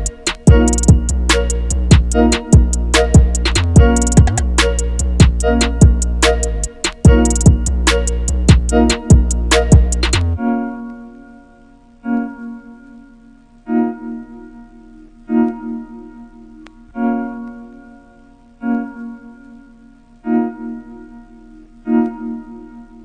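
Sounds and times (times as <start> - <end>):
keyboard chord: 0.0 - 23.0.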